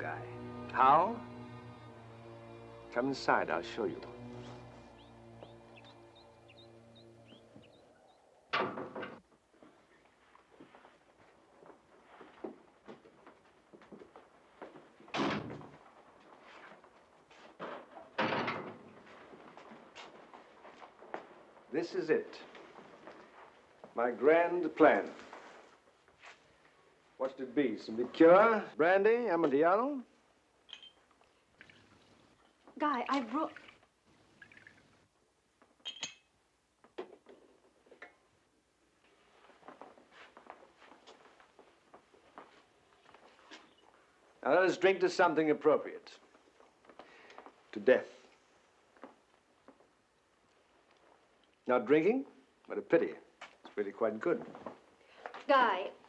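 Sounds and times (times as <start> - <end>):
soft rustling: 9.5 - 15.1, 24.9 - 27.1, 39.0 - 44.2
glasses clinking: 30.7 - 31.1, 35.8 - 36.3
footsteps on hard floor: 39.2 - 43.7.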